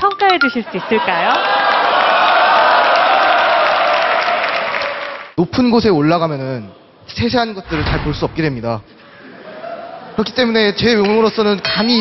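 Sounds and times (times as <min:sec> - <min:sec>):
audience applauding: 0:01.0 - 0:05.4.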